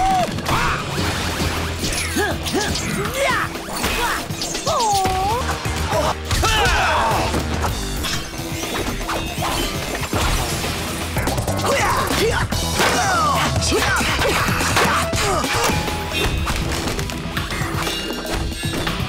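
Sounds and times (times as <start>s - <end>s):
action music: 0.0s - 19.0s.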